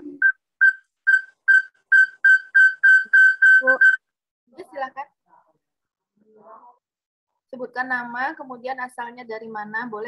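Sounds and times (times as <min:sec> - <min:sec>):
high whistle-like pulsing tone: 0:00.2 - 0:04.0.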